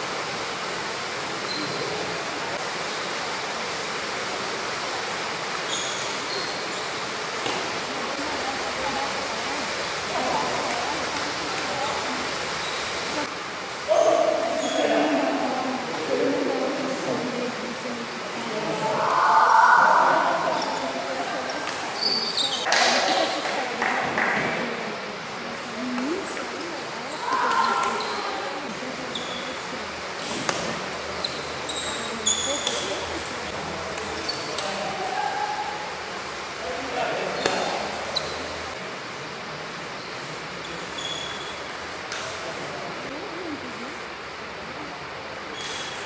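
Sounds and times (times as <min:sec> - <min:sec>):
faint voices: 0:00.0 - 0:46.0.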